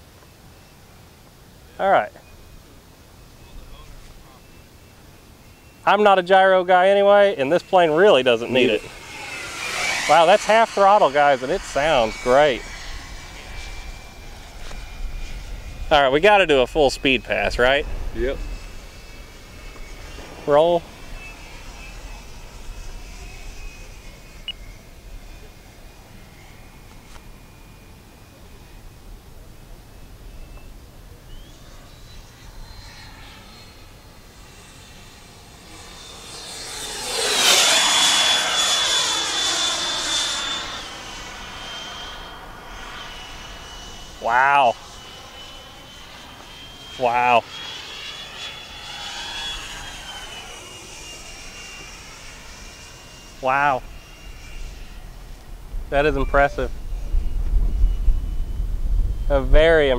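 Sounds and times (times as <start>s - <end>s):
electric ducted fan whine: 0.0s - 59.9s
low rumble: 8.4s - 26.1s, 54.7s - 59.9s.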